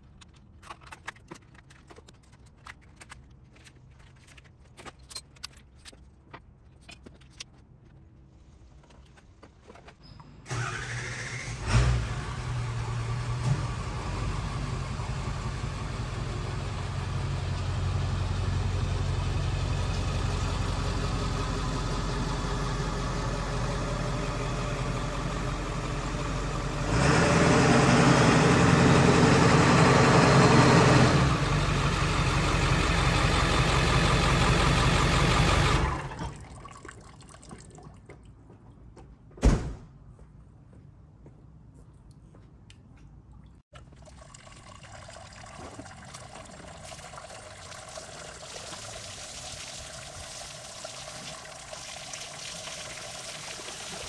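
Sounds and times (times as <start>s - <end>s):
diesel truck engine starting and idling: 10.4s - 36.6s.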